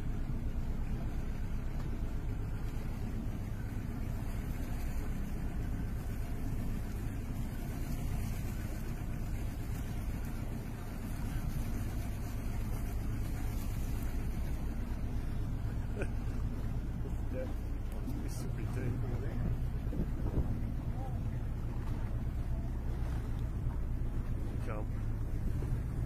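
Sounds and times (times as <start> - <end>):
boat engine humming: 0.0 - 26.0
water wash: 0.0 - 26.0.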